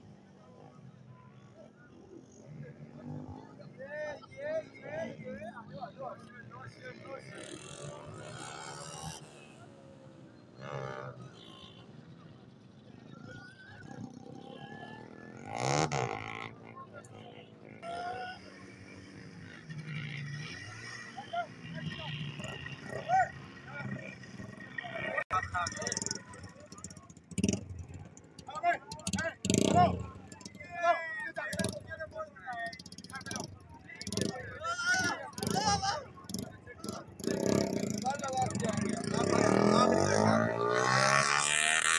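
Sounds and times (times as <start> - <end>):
people talking: 0.0 - 9.8, 11.4 - 18.8, 21.0 - 41.9.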